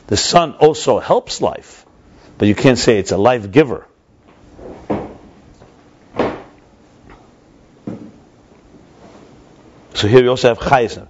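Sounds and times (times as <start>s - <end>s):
short thump: 6.2s - 6.6s.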